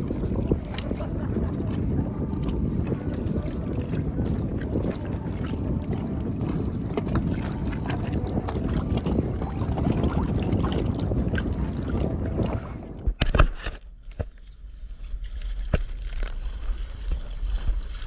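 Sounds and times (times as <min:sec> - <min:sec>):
paddle splashes and drips: 0:00.0 - 0:13.1
wind buffeting microphone: 0:00.0 - 0:13.2.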